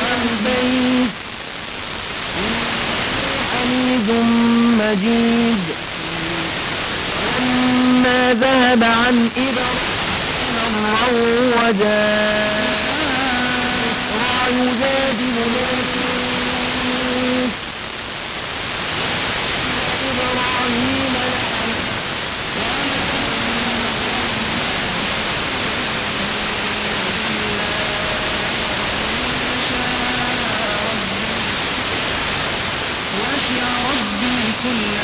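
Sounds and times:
heavy radio hiss: 0:00.0 - 0:35.0
radio recitation with wavering notes: 0:00.0 - 0:35.0.

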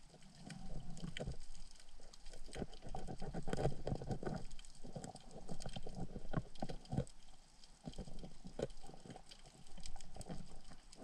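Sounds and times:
underwater handling clicks and crackles: 0:00.0 - 0:11.0.

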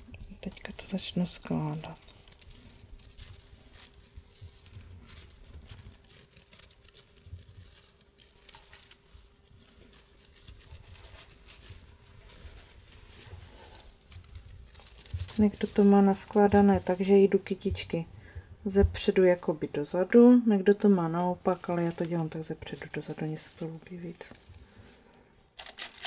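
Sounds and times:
lace rustling: 0:00.0 - 0:26.0
crisp clicks of starched lace: 0:00.1 - 0:18.2, 0:25.6 - 0:26.0.

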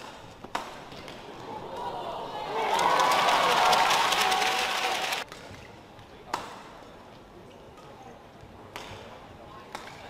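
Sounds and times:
racket striking shuttlecock: 0:00.0 - 0:01.2
crowd cheering and clapping: 0:01.7 - 0:05.2.

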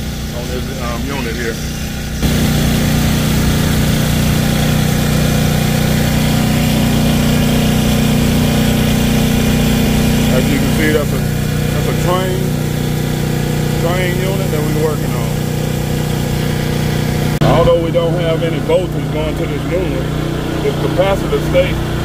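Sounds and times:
generator engine humming: 0:00.0 - 0:22.0.

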